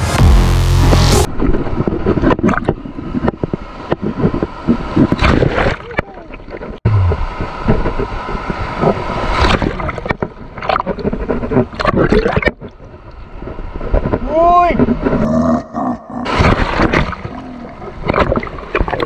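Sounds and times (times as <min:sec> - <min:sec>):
sea water splashing: 0:01.3 - 0:14.2, 0:16.2 - 0:19.0.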